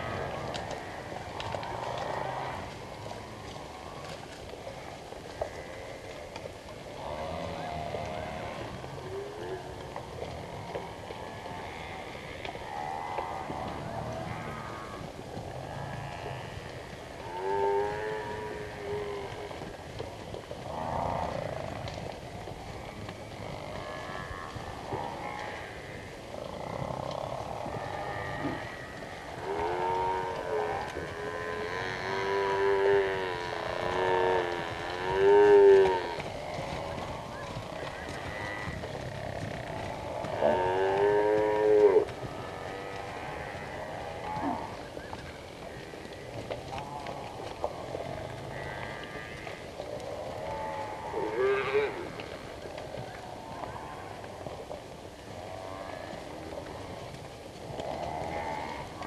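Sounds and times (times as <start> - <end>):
buffalo mooing calls: 22.8 - 45.0.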